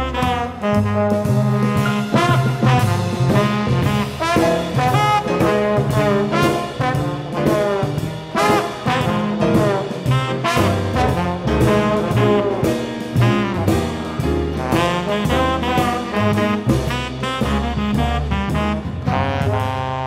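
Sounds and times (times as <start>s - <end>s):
tenor saxophone: 0.0s - 7.3s, 8.4s - 20.0s
jazz band playing swing: 0.0s - 20.0s
trombone: 0.0s - 20.0s.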